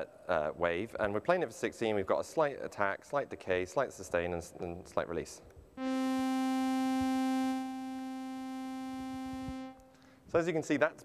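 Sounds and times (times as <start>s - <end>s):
buzzy sawtooth synth tone: 5.8s - 9.9s.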